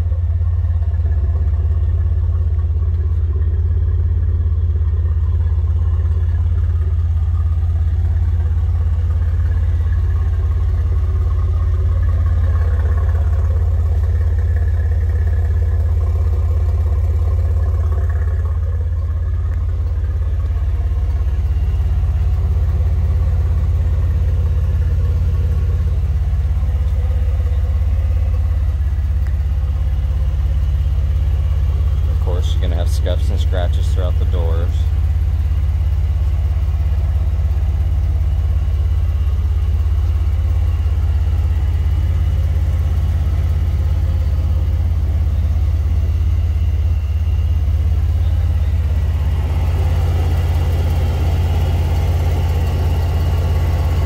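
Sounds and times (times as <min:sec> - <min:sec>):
car engine idling: 0:00.0 - 0:54.0.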